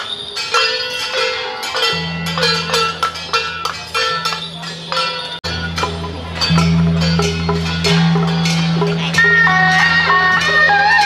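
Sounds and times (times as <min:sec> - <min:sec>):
small gongs struck: 0:01.1 - 0:11.0.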